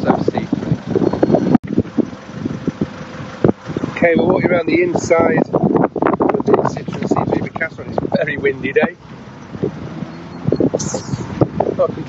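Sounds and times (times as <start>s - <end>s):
diesel engine idling: 0.0s - 12.0s
wind noise on microphone: 0.0s - 12.0s.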